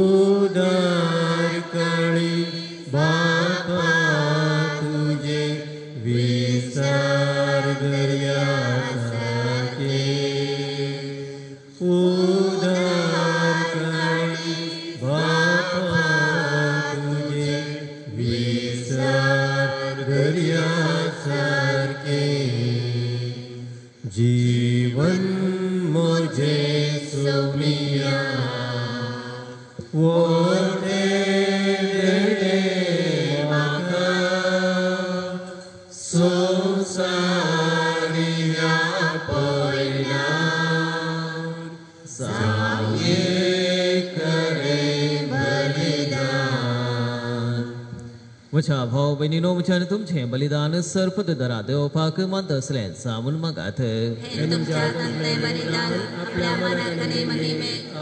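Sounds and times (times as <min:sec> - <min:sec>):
slow liturgical singing: 0:00.0 - 0:50.7, 0:53.8 - 0:58.0.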